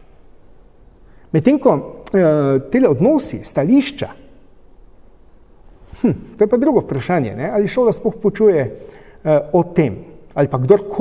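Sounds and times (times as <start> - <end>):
steady low hum: 0.0 - 11.0
man speaking: 1.3 - 4.3, 6.0 - 11.0
mouth sound: 5.9 - 6.5.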